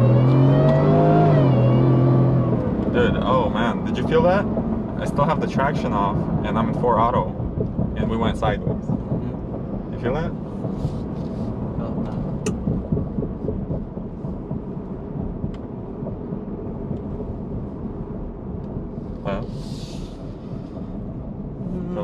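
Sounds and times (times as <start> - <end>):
truck engine and road rumble: 0.0 - 22.0.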